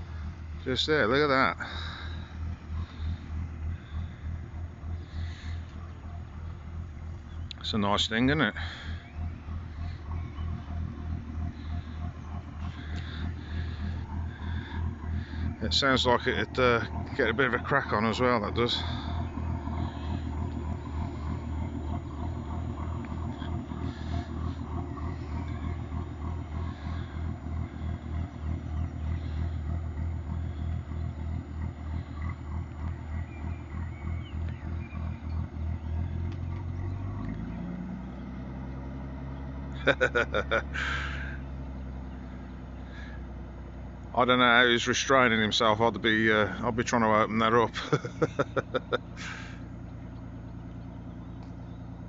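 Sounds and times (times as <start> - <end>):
boat engine pulsing exhaust: 0.0 - 52.0
man laughing: 39.7 - 41.4, 47.7 - 49.6.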